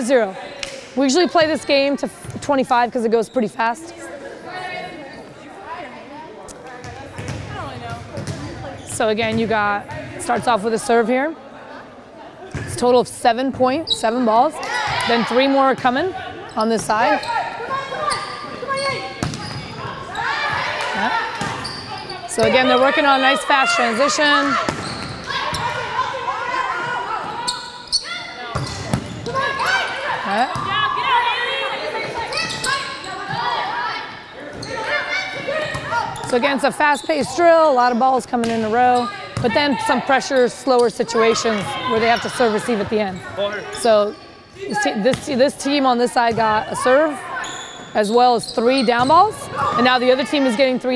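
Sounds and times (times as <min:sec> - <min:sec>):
players calling: 0:11.9 - 0:50.9.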